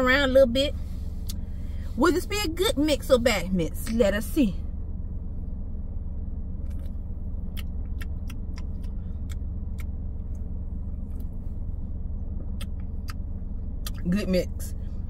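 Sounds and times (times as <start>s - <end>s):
low rumble in car cabin: 0.0s - 15.0s.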